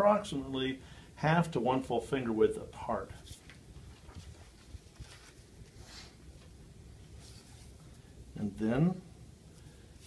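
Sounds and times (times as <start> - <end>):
tape rustling and ticking: 3.3 - 6.6.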